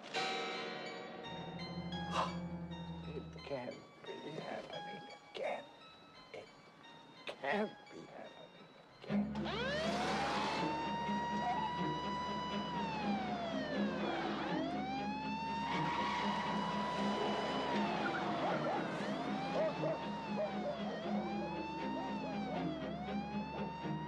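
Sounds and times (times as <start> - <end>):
emergency vehicle siren wailing: 9.1 - 24.0.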